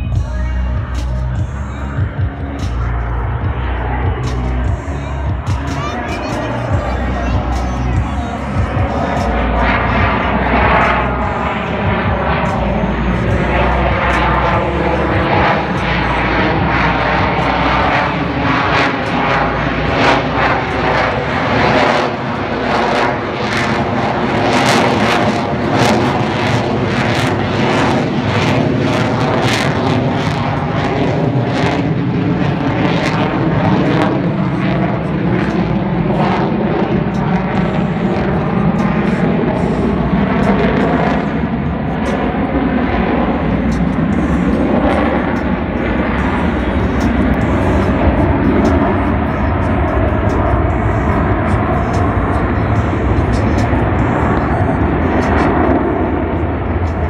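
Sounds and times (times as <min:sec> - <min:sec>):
jet engine roar sweeping in pitch: 0:00.0 - 0:57.0.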